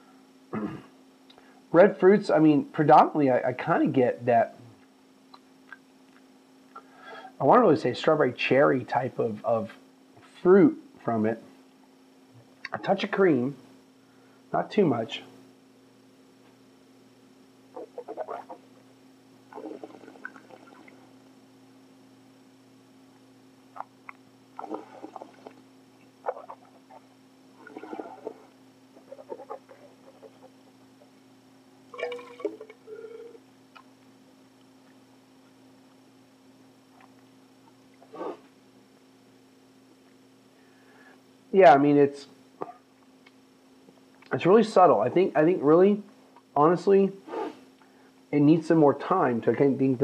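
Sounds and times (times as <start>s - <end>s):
steady low hum: 0.0s - 50.0s
person slurping wine: 17.9s - 18.6s, 19.5s - 20.9s, 24.6s - 25.6s, 27.6s - 30.4s.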